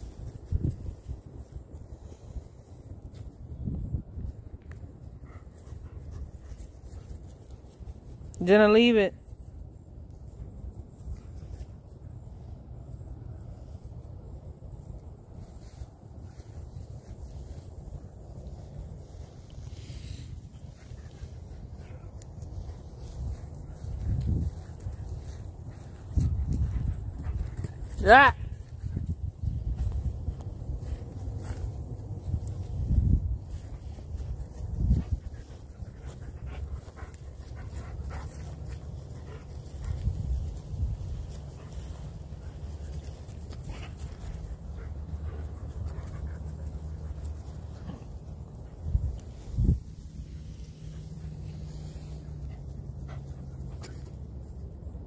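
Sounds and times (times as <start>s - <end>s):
wind buffeting microphone: 0.0s - 7.0s, 19.0s - 52.6s
dog panting: 34.9s - 40.1s, 41.4s - 48.8s, 50.9s - 54.0s.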